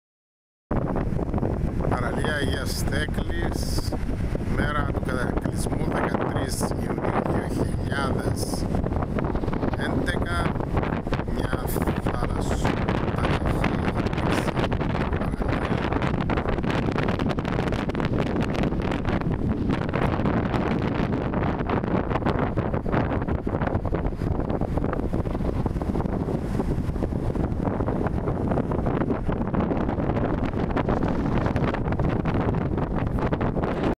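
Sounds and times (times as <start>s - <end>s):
strong wind on microphone: 0.7s - 34.0s.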